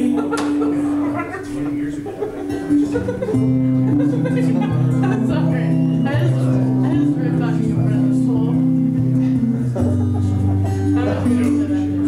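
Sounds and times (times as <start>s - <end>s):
guitar sustained low notes: 0.0s - 12.0s.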